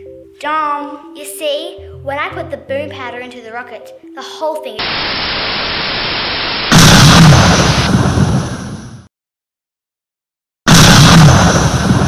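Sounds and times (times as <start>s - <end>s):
explosion blast: 4.8s - 9.1s, 10.7s - 12.0s.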